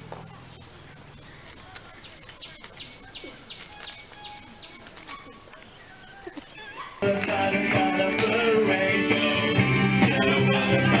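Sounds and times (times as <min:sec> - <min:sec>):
bird calling high downward notes: 0:01.2 - 0:09.9.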